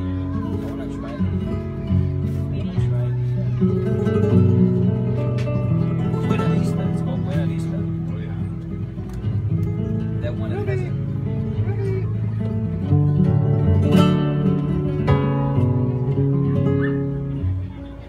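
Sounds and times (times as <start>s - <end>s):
strummed flamenco guitars: 0.0s - 18.0s.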